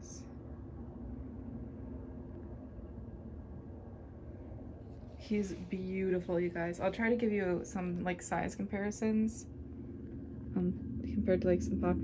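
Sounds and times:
faint hum: 0:00.0 - 0:12.0
low background rumble: 0:00.0 - 0:12.0.

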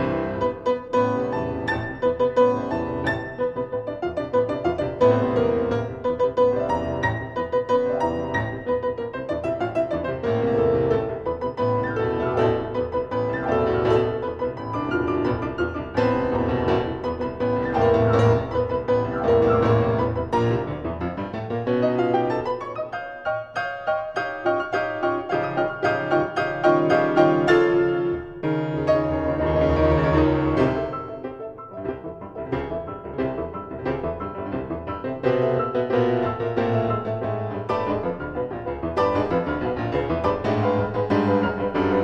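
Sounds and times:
piano duo playing a fast galop: 0:00.0 - 0:42.0.

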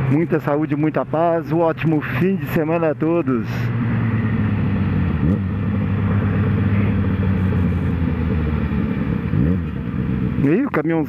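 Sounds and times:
motorcycle engine running: 0:00.0 - 0:11.0
road noise: 0:00.0 - 0:11.0.

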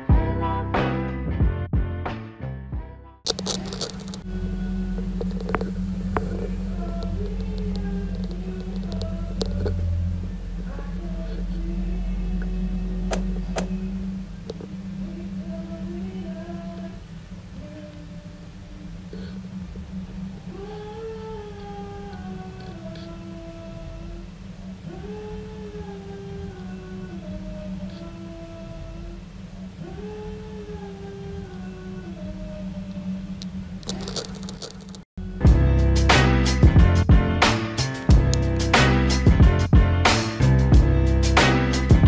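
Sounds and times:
short scratchy clicks: 0:03.3 - 0:04.3, 0:33.8 - 0:35.1
steady electrical hum: 0:03.3 - 0:36.0.

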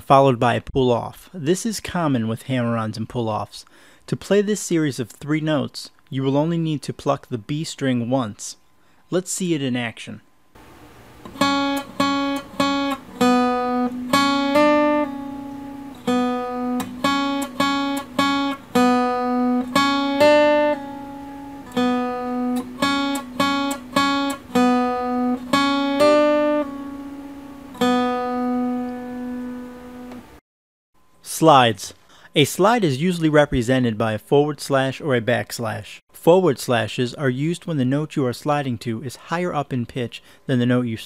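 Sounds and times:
acoustic guitar melody: 0:11.2 - 0:30.4.

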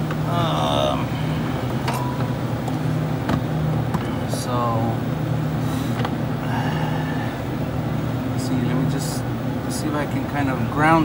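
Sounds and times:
low machinery hum: 0:00.0 - 0:11.0.

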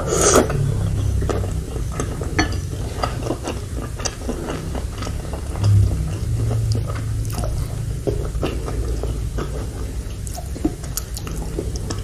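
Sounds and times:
chewing noodles: 0:00.0 - 0:12.0
small clicks and crackles in mouth: 0:08.1 - 0:12.0.

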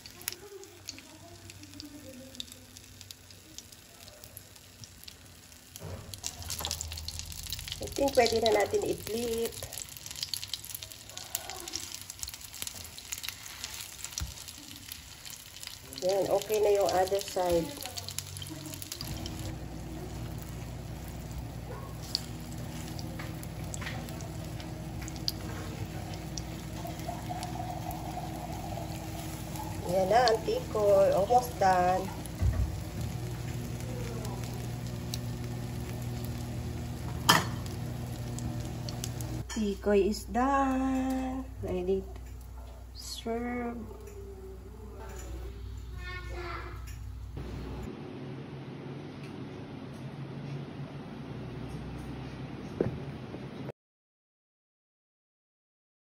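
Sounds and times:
oil popping and crackling: 0:00.0 - 0:39.6
rice cake sizzling in oil: 0:00.0 - 0:43.2
small pops and crackles: 0:09.4 - 0:19.5
steady low hum: 0:15.6 - 0:53.7.

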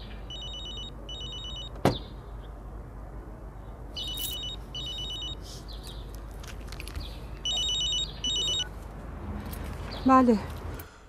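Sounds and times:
mobile phone ringing: 0:00.3 - 0:01.8, 0:04.0 - 0:05.4, 0:07.4 - 0:08.7.

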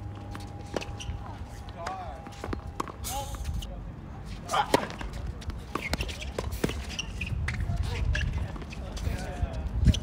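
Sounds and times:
wind on microphone: 0:07.3 - 0:10.0.

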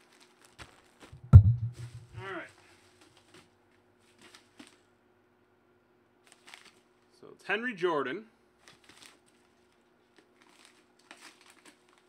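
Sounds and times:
bubble wrap crinkles and clicks: 0:00.0 - 0:00.6, 0:06.3 - 0:06.8, 0:10.1 - 0:12.0
loud thump: 0:01.2 - 0:02.2
short low rumble: 0:01.2 - 0:02.2.

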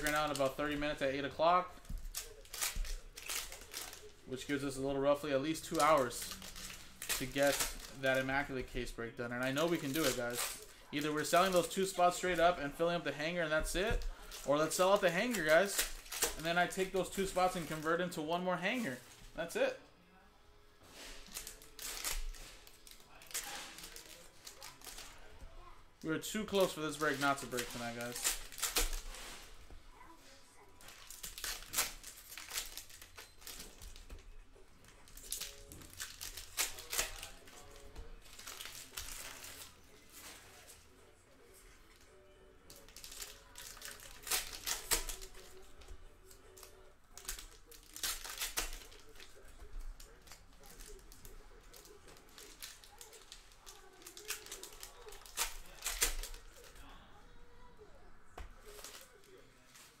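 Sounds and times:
trading cards snapping and rustling: 0:01.8 - 0:04.2, 0:05.4 - 0:08.3, 0:09.4 - 0:12.9, 0:13.6 - 0:17.9, 0:21.0 - 0:25.2, 0:26.4 - 0:29.4, 0:30.8 - 0:34.3, 0:34.9 - 0:40.6, 0:42.7 - 0:56.8, 0:58.4 - 1:00.0.

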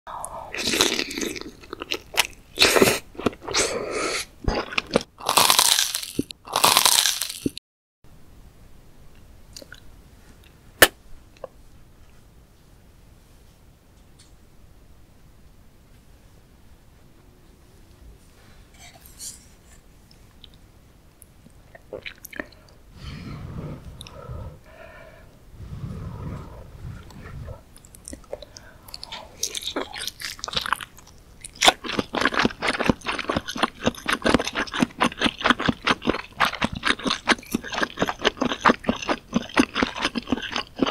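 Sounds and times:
wet biting and chewing: 0:27.0 - 0:40.9.

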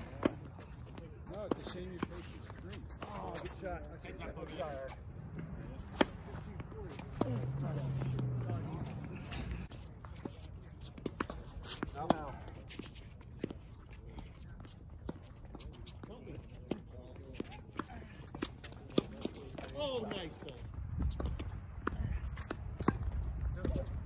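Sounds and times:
tennis balls struck by rackets: 0:05.3 - 0:12.8, 0:16.6 - 0:24.0.

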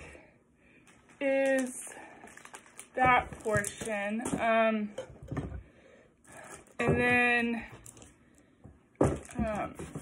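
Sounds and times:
woman speaking: 0:01.2 - 0:02.0, 0:03.0 - 0:05.0, 0:06.8 - 0:07.8, 0:09.2 - 0:10.0.

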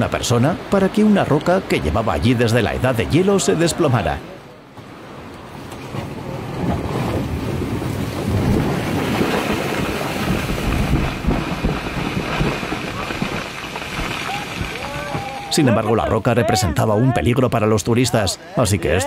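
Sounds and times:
wind buffeting microphone: 0:05.9 - 0:15.5
boulder tumbling down rocky slope: 0:06.7 - 0:15.7.

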